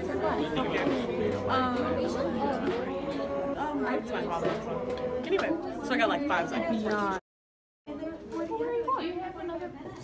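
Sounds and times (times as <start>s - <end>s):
chatter of people talking: 0.0s - 7.2s, 7.9s - 10.0s.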